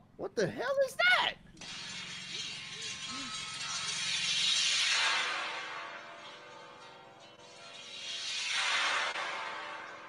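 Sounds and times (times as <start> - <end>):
metal wind chime jingling: 1.6 - 4.8.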